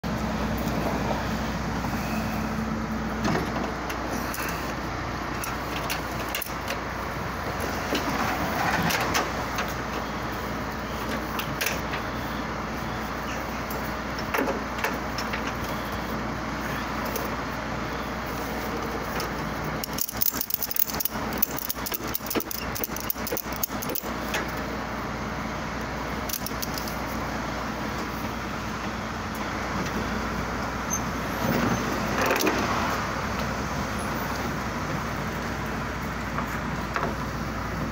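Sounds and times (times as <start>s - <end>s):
truck engine idling: 0.0s - 37.9s
metal hooks rattling and clinking: 19.8s - 24.1s
ratchet strap clicking: 19.8s - 24.1s, 26.3s - 27.0s.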